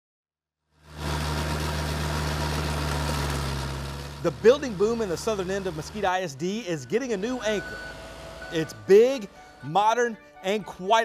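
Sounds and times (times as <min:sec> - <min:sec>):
construction machine engine idling: 0:00.8 - 0:09.8.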